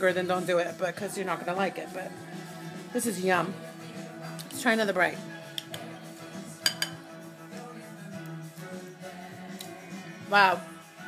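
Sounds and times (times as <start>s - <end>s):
background pop music: 0.0s - 11.0s
utensil clinking glass bowl: 6.6s - 7.0s.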